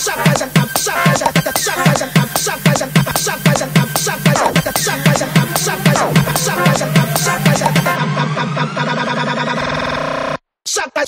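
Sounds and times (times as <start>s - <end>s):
fast repeated note roll: 0.0s - 10.3s
synth riser climbing in pitch: 1.6s - 10.4s.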